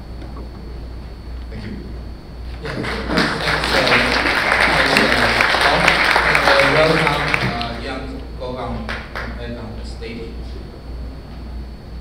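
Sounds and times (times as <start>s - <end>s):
voices: 1.5s - 10.9s
audience applauding: 2.6s - 7.9s, 8.8s - 9.4s.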